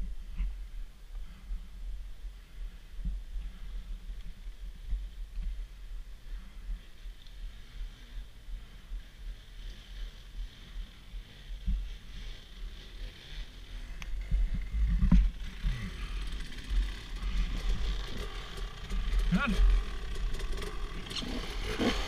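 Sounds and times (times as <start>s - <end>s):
dirt bike engine revving: 10.0s - 22.0s.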